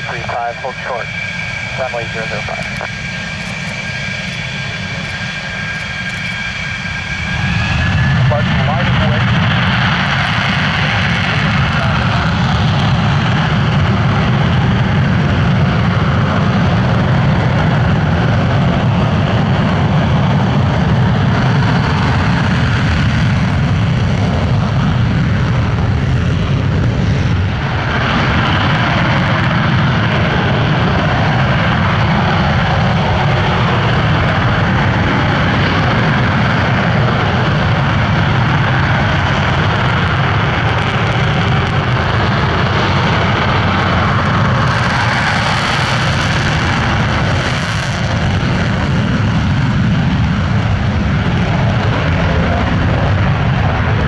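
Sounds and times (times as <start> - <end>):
jet engines roaring: 0.0 - 54.0.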